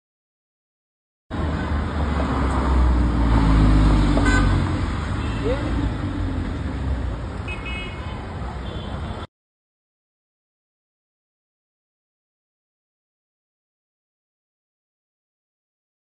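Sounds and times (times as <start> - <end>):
street voices: 1.3 - 9.3
high-pitched car horn toots: 4.2 - 4.6, 7.5 - 9.0.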